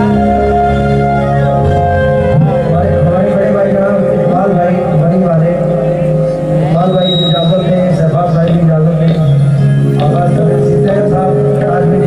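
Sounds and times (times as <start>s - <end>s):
harmonium held notes: 0.0s - 12.0s
man singing: 10.0s - 12.0s.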